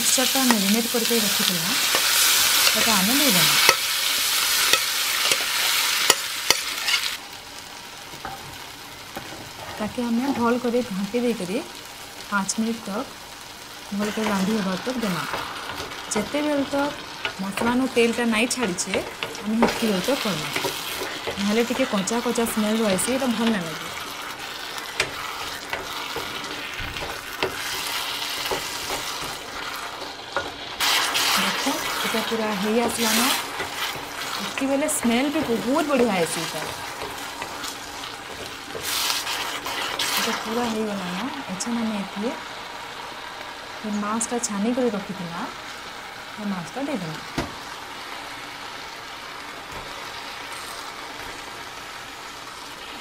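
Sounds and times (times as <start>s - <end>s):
vegetables sizzling in oil: 0.0s - 53.0s
spatula tapping and scraping pan: 4.6s - 7.0s, 18.5s - 21.9s, 24.5s - 40.2s.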